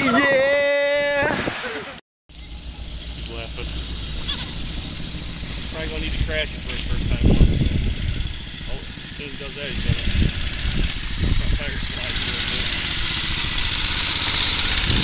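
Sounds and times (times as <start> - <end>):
mini bike engine idling: 2.3 - 15.0.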